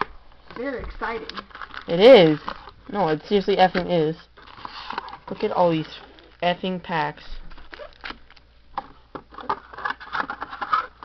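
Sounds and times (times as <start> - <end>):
foil packs crinkling: 1.0 - 6.5, 7.4 - 8.5.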